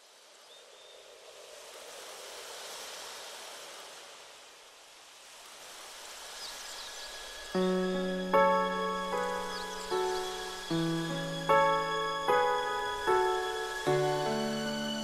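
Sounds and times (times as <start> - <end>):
water ambience: 0.0 - 15.0
faint bird chirps: 6.4 - 12.1.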